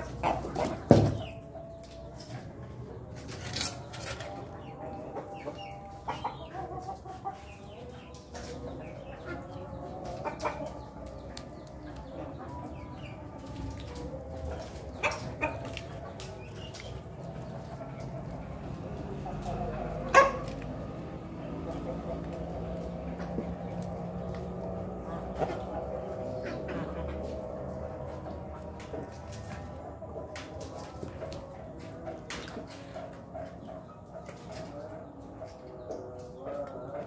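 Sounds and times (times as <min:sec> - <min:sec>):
rooster clucking: 0:00.0 - 0:01.8, 0:02.5 - 0:37.0.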